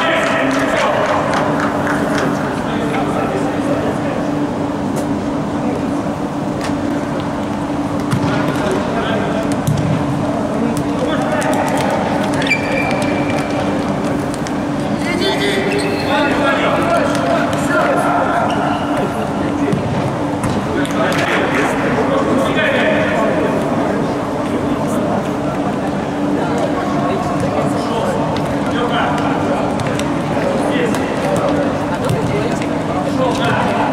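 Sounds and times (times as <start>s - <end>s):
echoing voices and shouts: 0.0s - 4.4s.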